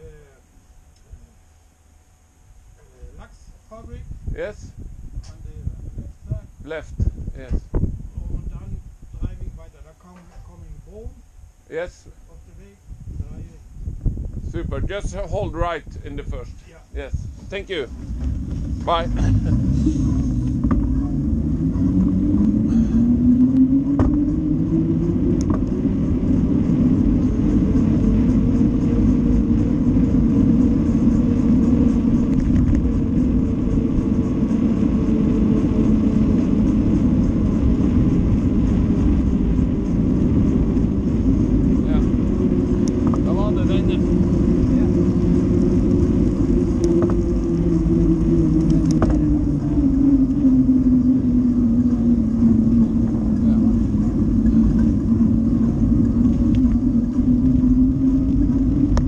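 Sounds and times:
road rumble: 0.0s - 59.0s
wind on microphone: 2.4s - 59.0s
small motor vehicle engine: 17.5s - 59.0s.

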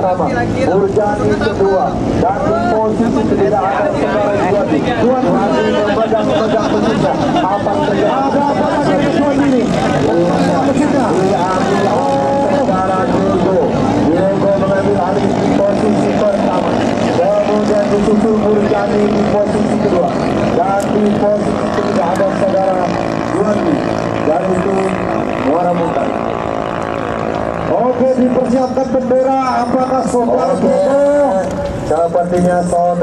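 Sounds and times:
racing boat engines whining: 0.0s - 33.0s.

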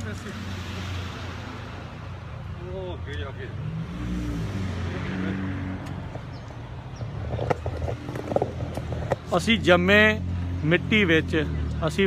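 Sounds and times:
car engines humming in traffic: 0.0s - 12.0s.

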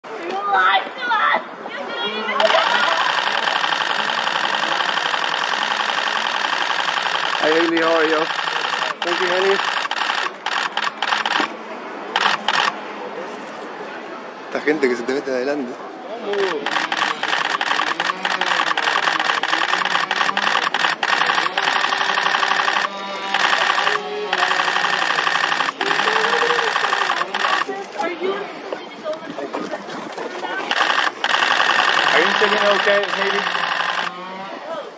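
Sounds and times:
voices: 0.1s - 34.9s
small motor rattling: 2.4s - 11.5s, 12.2s - 12.8s, 16.3s - 27.8s, 30.7s - 34.1s
loud mechanical buzz: 2.4s - 12.8s, 16.3s - 27.8s, 30.7s - 34.2s.

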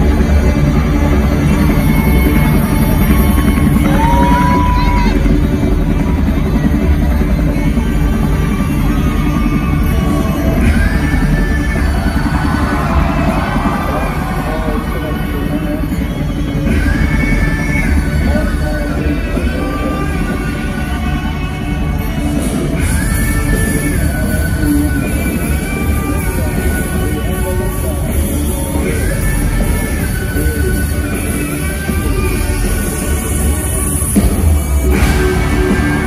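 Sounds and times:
helicopter rotor sound effect: 0.0s - 36.0s
loud live concert music: 0.0s - 36.0s
person crying out in crowd: 3.8s - 5.4s.

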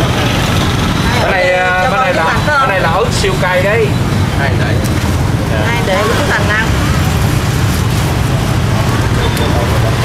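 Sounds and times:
people talking: 0.0s - 7.2s, 8.9s - 10.0s
traffic rumble: 0.0s - 10.0s.

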